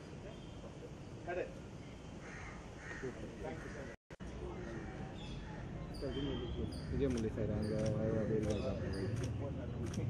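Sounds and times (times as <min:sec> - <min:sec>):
bird cawing: 0:02.2 - 0:05.0.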